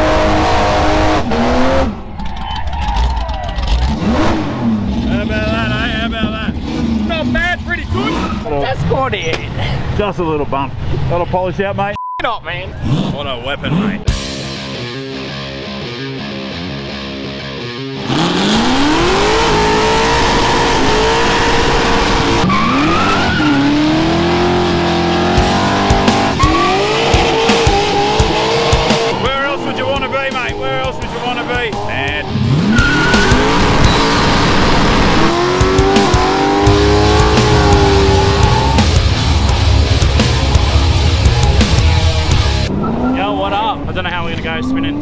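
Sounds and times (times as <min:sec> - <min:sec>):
car engine revving: 0:00.0 - 0:09.2, 0:12.7 - 0:45.0
tyres squealing: 0:22.4 - 0:39.0.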